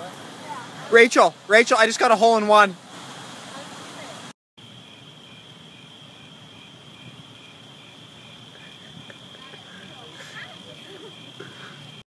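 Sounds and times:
insect high trill: 0:04.6 - 0:12.0
insect pulsing chirp: 0:04.6 - 0:12.0
faint voices: 0:08.6 - 0:12.0.

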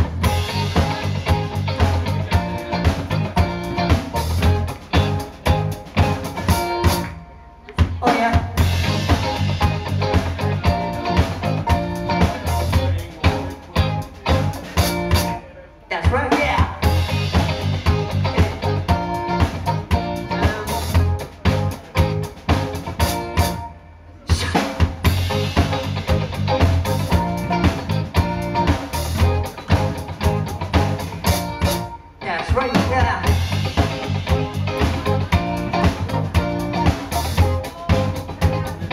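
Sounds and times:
live rock band playing: 0:00.0 - 0:38.9
male singer: 0:07.8 - 0:08.7, 0:15.9 - 0:18.8, 0:32.2 - 0:33.4, 0:37.4 - 0:38.9.

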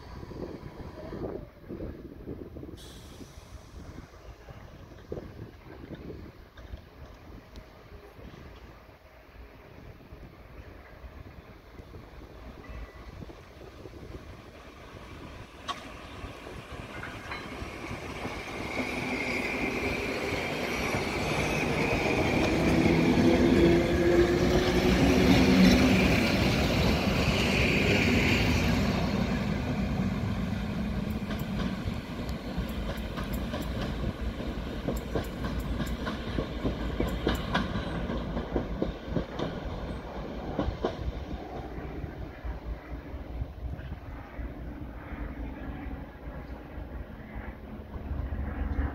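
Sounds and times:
electric train rumbling by: 0:00.0 - 0:48.9
wheels clicking over rail joints: 0:29.8 - 0:41.8.

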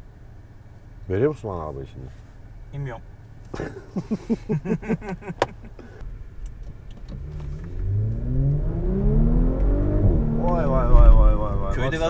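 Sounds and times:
men laughing: 0:03.5 - 0:06.0
car engine accelerating hard: 0:06.9 - 0:12.0.

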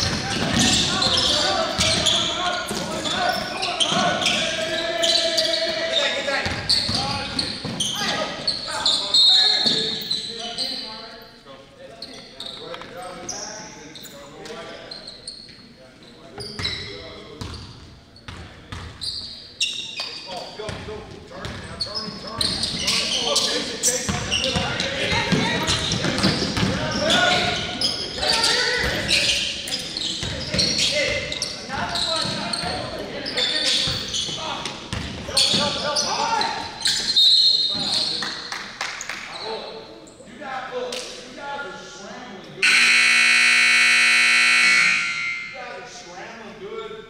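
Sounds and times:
sneaker squeaks: 0:00.0 - 0:11.4, 0:12.0 - 0:38.4, 0:42.6 - 0:45.6
scoreboard horn buzz: 0:42.6 - 0:45.6.

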